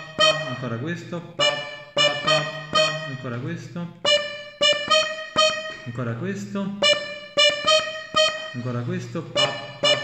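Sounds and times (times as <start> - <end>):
button accordion notes: 0.0 - 0.8, 1.4 - 6.1, 6.8 - 10.0.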